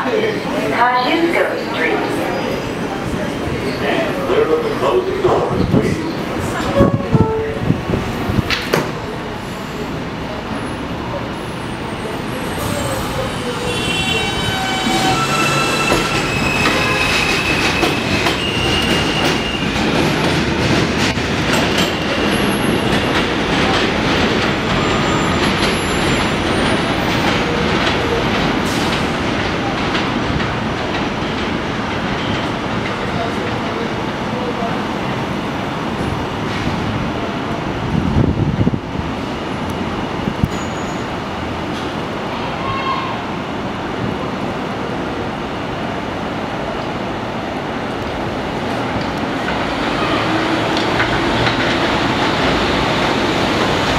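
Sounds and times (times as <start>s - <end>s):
train wheels rumbling on rails: 1.3s - 53.9s.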